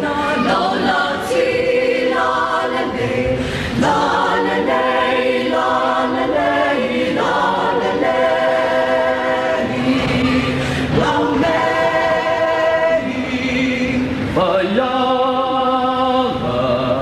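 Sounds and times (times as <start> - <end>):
mixed choir singing: 0.0 - 17.0.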